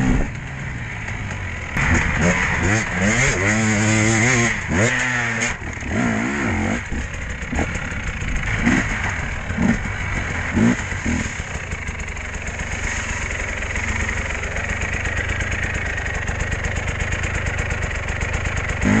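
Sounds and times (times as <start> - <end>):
dirt bike engine idling: 0.0 - 19.0.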